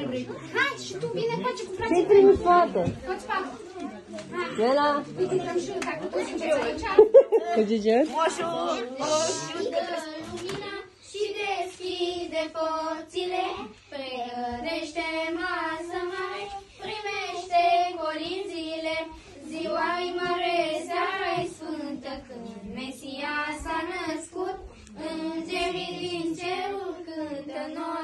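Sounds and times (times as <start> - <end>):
children singing a carol: 8.2 - 28.0.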